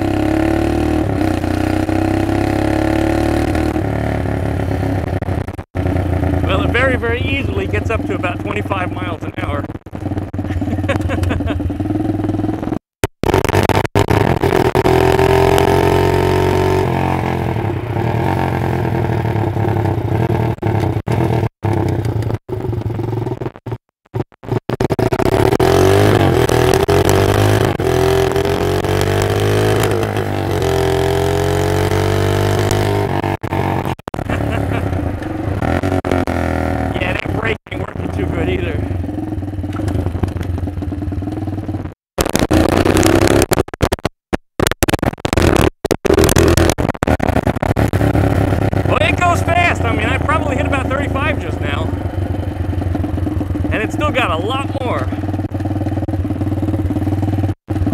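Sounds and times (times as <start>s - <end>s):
minibike engine revving: 0.0s - 23.4s, 24.4s - 43.5s, 45.4s - 57.9s.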